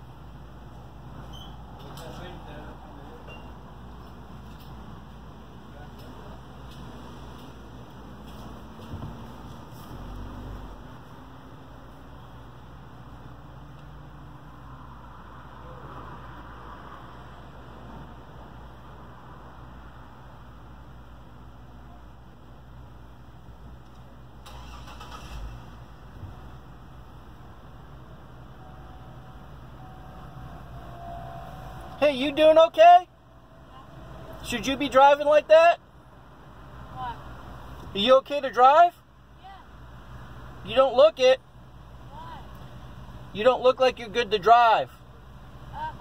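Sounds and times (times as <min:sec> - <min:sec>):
car engine idling: 0:20.6 - 0:38.0.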